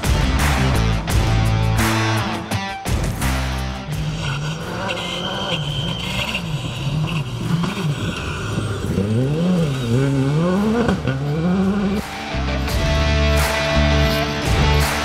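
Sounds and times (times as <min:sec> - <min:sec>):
rally car engine revving: 0:00.0 - 0:15.0.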